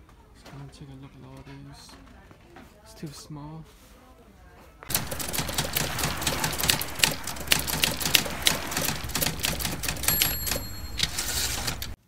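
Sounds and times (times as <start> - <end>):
typewriter keys clacking: 4.9 - 12.0
typewriter bell ring: 5.0 - 12.0.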